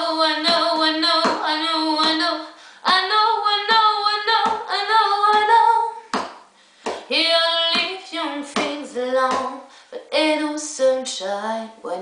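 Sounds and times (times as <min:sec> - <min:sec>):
woman singing: 0:00.0 - 0:06.2, 0:06.9 - 0:12.0.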